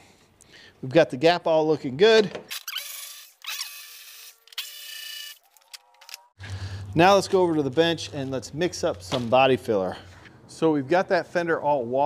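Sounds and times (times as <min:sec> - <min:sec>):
electric ratchet whining: 0:02.5 - 0:06.2.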